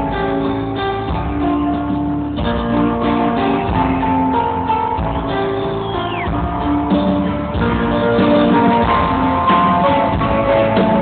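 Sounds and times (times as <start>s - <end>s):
live band music with strummed guitar: 0.0s - 11.0s.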